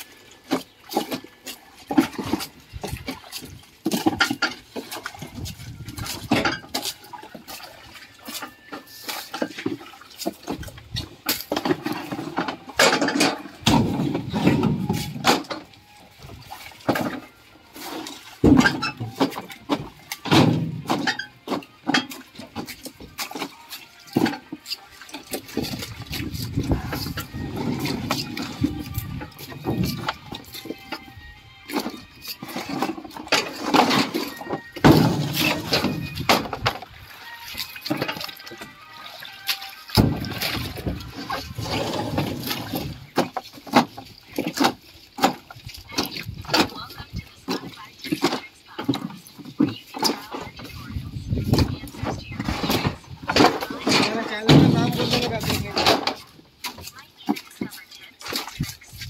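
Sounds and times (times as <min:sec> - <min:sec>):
water sloshing in a tank: 0:00.0 - 0:59.0
knocks and clatter of handling: 0:00.4 - 0:07.6, 0:08.2 - 0:31.1, 0:31.7 - 0:36.9, 0:51.5 - 0:58.4.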